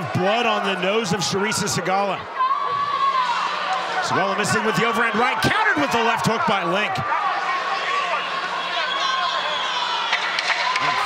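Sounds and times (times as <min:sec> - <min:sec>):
arena crowd noise: 0:00.0 - 0:11.0
voices shouting: 0:00.0 - 0:11.0.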